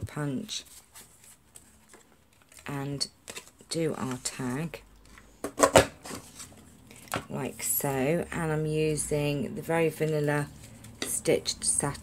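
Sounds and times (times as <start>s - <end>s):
faint rustling of card: 0.6s - 2.7s.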